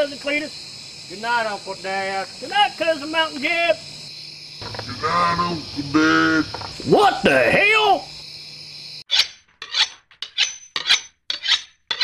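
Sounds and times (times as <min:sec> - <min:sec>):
rasping back-and-forth scrapes: 0:09.1 - 0:12.0.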